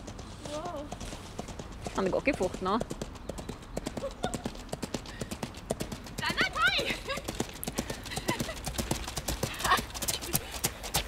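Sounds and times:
hooves galloping on slush: 0.0s - 11.0s.

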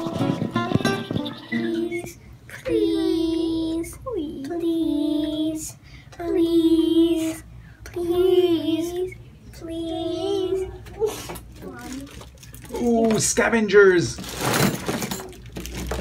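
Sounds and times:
girl singing held notes: 0.0s - 11.4s
girl breathing: 5.7s - 6.2s, 7.5s - 7.9s.

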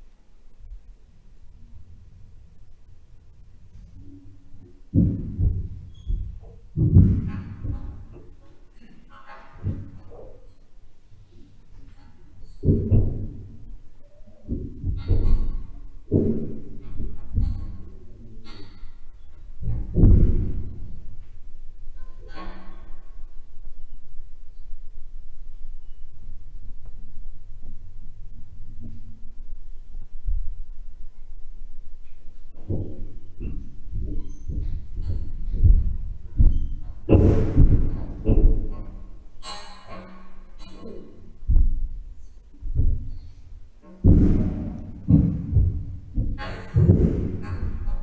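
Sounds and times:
low muffled knocks: 4.9s - 8.4s, 19.6s - 21.3s, 32.6s - 39.0s, 41.5s - 48.0s.

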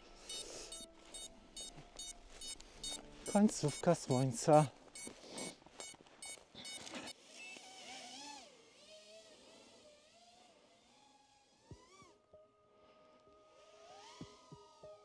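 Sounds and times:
drone motors whining: 5.8s - 12.2s, 13.6s - 15.0s.

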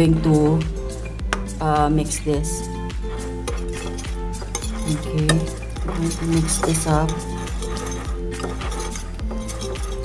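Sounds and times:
background music: 0.0s - 10.0s
whisk scraping ceramic plate: 2.9s - 10.0s.

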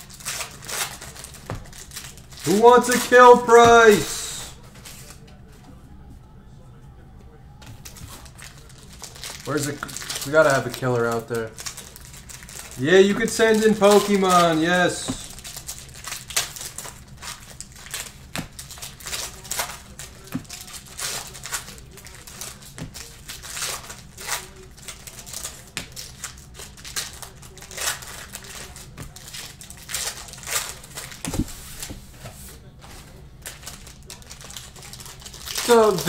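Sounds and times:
cards clicking and rustling: 0.0s - 5.4s, 7.7s - 32.3s, 32.9s - 36.0s.

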